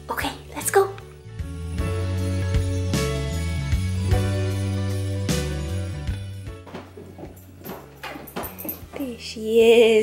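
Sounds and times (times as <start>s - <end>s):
dog claws tapping on wooden floor: 6.6s - 9.2s.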